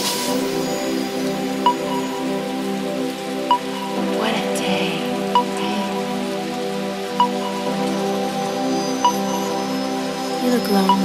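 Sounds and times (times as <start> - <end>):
hissing noise sweep: 0.0 - 10.9.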